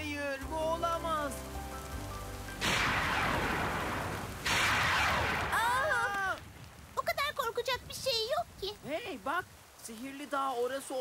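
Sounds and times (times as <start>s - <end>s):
rain: 0.0s - 11.0s
thunderclaps: 2.5s - 8.8s
person crying out: 5.5s - 6.4s.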